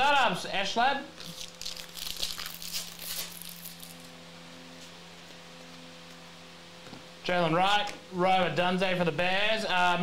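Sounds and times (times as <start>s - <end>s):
faint steady hum: 0.0s - 10.0s
plastic wrapper crinkling and tearing: 1.2s - 4.1s.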